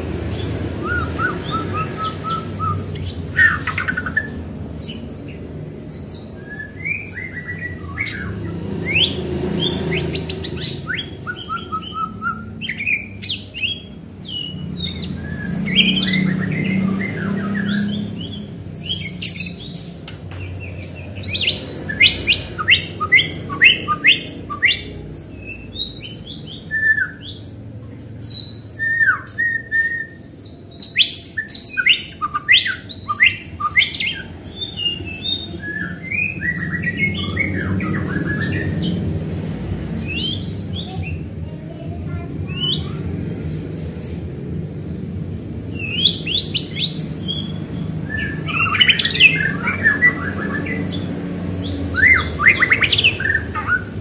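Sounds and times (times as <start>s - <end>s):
bird singing varied song: 0.0s - 54.0s.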